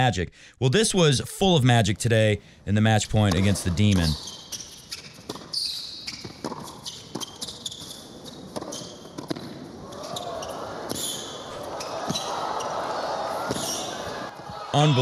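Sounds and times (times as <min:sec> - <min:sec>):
crowd noise: 0:00.9 - 0:04.2, 0:09.7 - 0:15.0
racquets striking tennis ball: 0:03.3 - 0:09.7
shoes squeaking on court: 0:03.3 - 0:12.8, 0:13.5 - 0:14.2.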